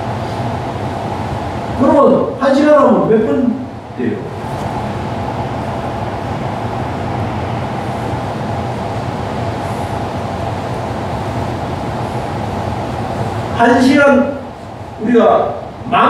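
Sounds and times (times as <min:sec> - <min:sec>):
mechanical rumble with low hum: 0:00.0 - 0:16.0.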